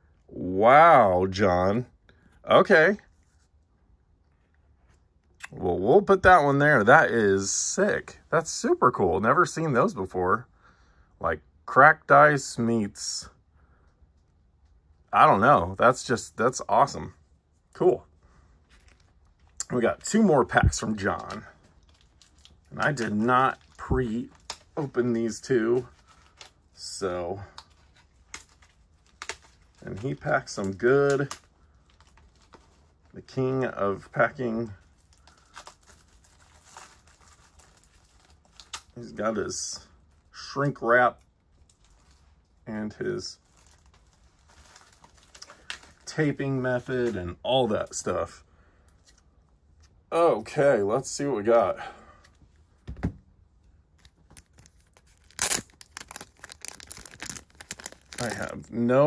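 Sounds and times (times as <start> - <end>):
person speaking: 15.1 - 18.1, 19.5 - 21.6, 22.6 - 26.0, 26.7 - 27.6, 29.8 - 31.4, 33.1 - 34.8, 42.6 - 43.5, 45.4 - 48.4, 50.0 - 52.2, 56.9 - 59.0
plastic crackling and crinkling: 15.9 - 48.1, 52.2 - 59.0
plastic wrap ripping: 27.6 - 33.3, 34.0 - 39.2, 43.1 - 46.4, 53.9 - 58.8.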